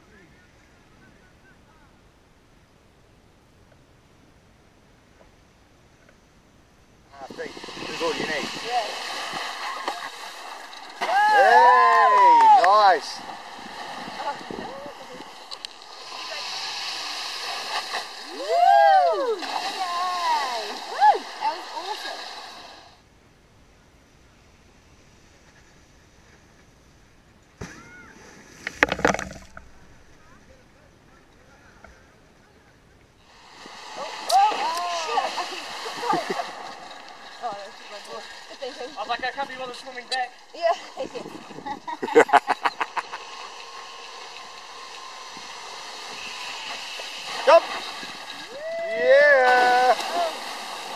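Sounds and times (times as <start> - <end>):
wakeboard spraying across water: 7.1 - 23.0, 33.2 - 50.9
voices calling out: 7.2 - 22.8, 33.6 - 39.4.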